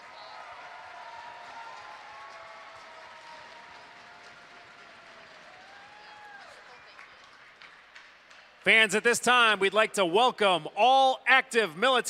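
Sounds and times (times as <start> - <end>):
crowd applauding: 0.0 - 9.4.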